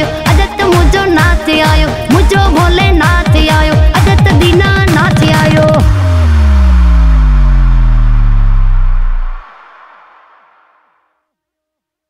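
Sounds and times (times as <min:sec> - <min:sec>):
deep bass tone sliding down: 0:04.0 - 0:10.9
wash of noise: 0:05.8 - 0:11.0.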